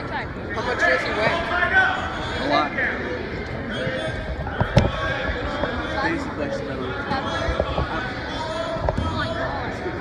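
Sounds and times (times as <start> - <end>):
spectators talking in gymnasium: 0.0 - 10.0.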